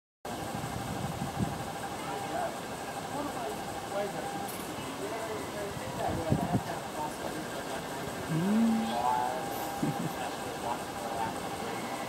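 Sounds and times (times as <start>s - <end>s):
outdoor background hiss: 0.3s - 12.0s
faint distant voices: 1.8s - 12.0s.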